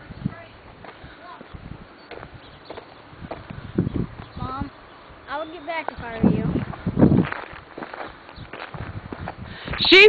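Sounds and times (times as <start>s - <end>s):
footsteps on gravel: 0.3s - 4.4s, 5.3s - 10.0s.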